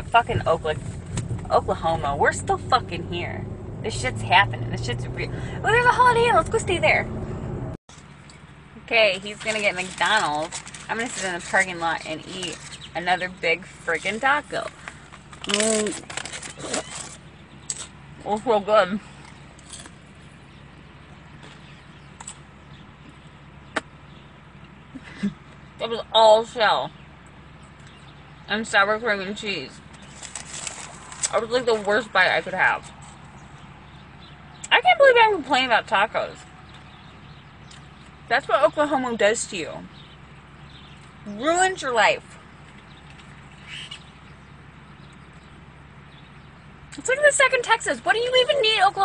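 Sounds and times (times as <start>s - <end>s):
car cabin hum: 0.0s - 49.0s.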